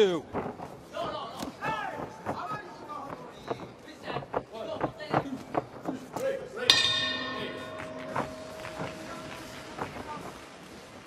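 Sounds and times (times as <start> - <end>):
boxing ring bell ringing: 6.7 - 9.9.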